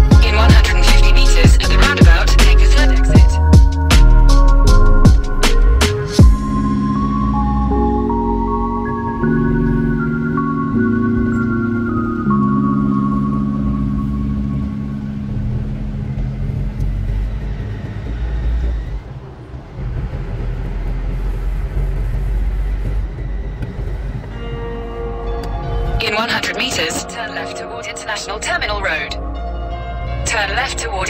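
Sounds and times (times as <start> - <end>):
background music with held chords: 0.0 - 18.5, 23.3 - 31.0
car driving heard from inside: 6.2 - 26.0.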